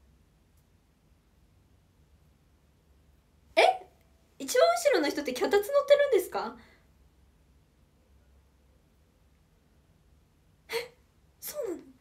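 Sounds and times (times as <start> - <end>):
woman's sharp exclamation: 3.6 - 3.9, 10.7 - 12.0.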